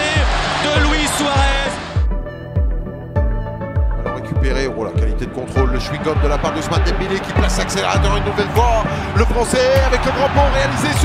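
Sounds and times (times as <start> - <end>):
stadium crowd cheering: 0.0 - 2.0, 6.0 - 11.0
music with pounding bass beat: 0.0 - 11.0.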